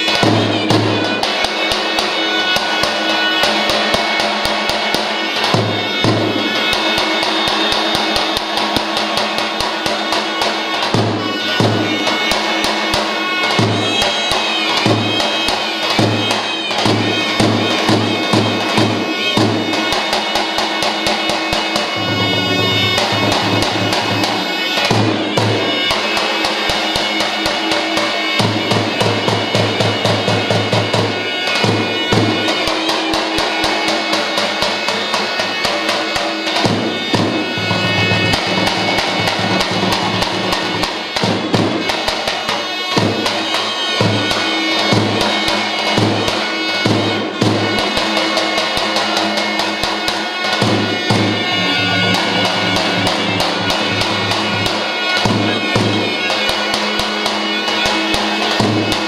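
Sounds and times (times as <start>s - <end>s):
held folk melody: 0.0s - 59.0s
large drum beaten fast: 0.0s - 59.0s.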